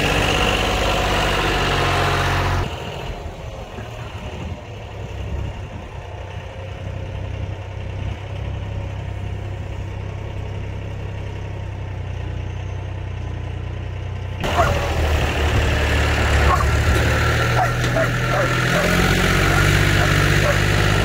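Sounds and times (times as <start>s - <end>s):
tractor diesel engine running: 0.0s - 21.0s.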